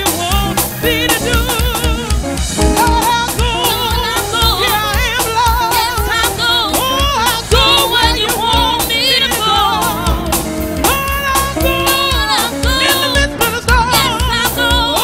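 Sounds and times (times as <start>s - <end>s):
bass: 0.0s - 15.0s
fast drum beat: 0.0s - 15.0s
gospel singing with vibrato: 0.0s - 15.0s.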